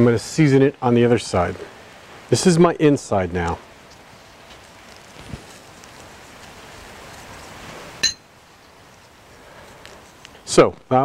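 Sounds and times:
faint hiss of sprinkled rub: 3.3 - 10.7
sharp clink: 8.0 - 8.2.

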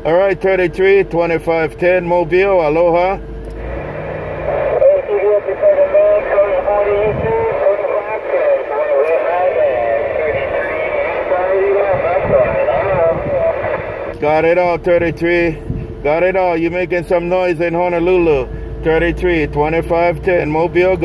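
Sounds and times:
radio static hiss: 3.6 - 14.3
speech over cb radio speaker: 4.4 - 21.0.

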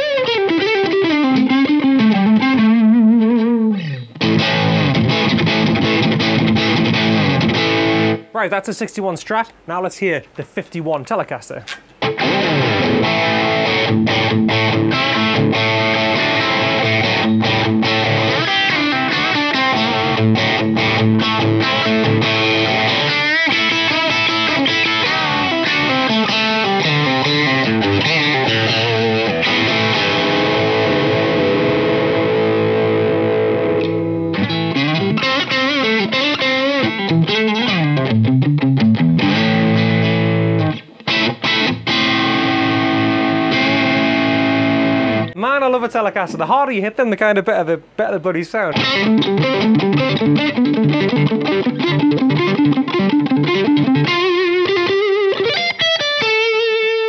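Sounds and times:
overdriven electric guitar: 0.0 - 8.3, 11.7 - 45.4, 48.7 - 57.0.

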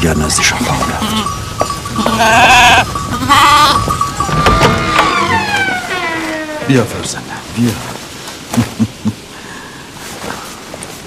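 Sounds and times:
sheep bleating: 0.5 - 6.7.

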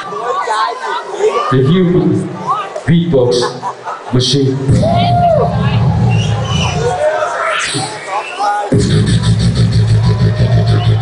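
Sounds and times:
beatboxing: 5.5 - 11.0.

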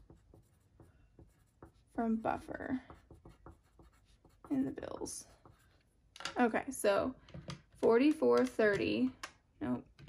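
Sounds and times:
pencil scratching on paper: 0.0 - 6.0.

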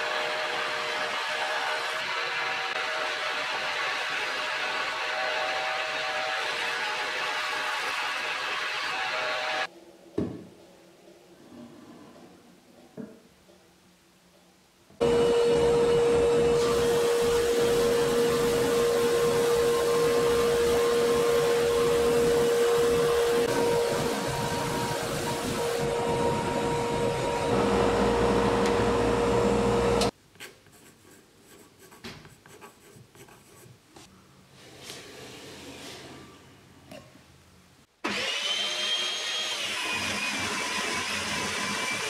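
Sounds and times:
drum sander whining: 15.0 - 30.1.

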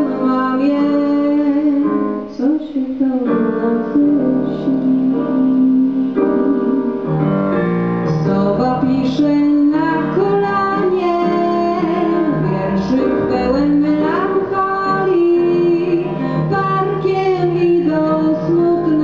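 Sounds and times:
woman singing: 0.0 - 7.3, 8.1 - 19.0
instrumental accompaniment: 0.0 - 19.0.

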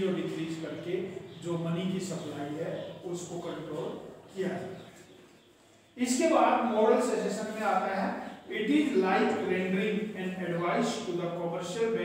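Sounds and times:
lecturer talking: 0.0 - 12.0.

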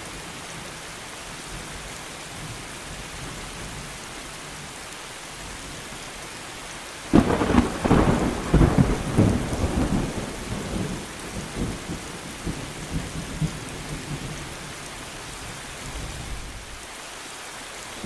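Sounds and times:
rain on leafy trees: 0.0 - 18.0
thunder rumble: 7.1 - 14.4.

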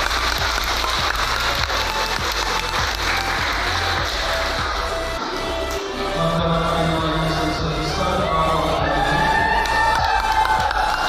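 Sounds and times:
congregation applauding: 0.0 - 5.1, 9.1 - 11.0
music with low bass notes: 0.0 - 11.0.

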